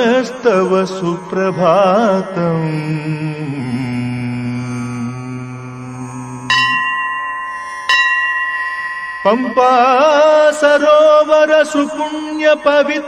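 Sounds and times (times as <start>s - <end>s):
person singing devotional music: 0.0s - 13.0s
bell-like chime ringing: 6.4s - 11.3s.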